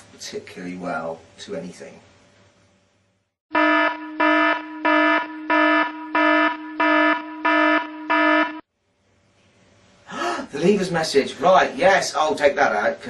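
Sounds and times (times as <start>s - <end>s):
pulsing electronic alarm buzz: 3.5s - 8.7s.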